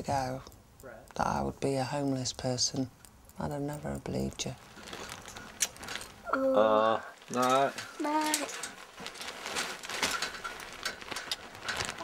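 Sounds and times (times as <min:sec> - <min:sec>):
rustling: 0:04.3 - 0:06.3, 0:07.2 - 0:12.0
household things clicking and knocking: 0:07.2 - 0:12.0.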